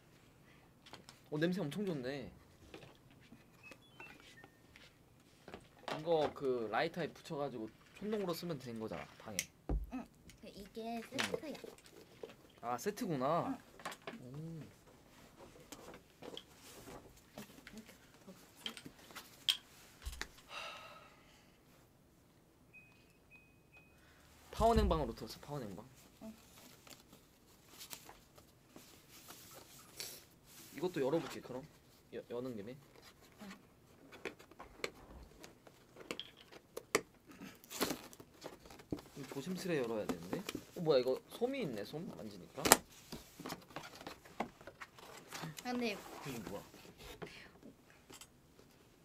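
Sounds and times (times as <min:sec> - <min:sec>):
paper wrapping crinkling and tearing: 0:37.6 - 0:39.3.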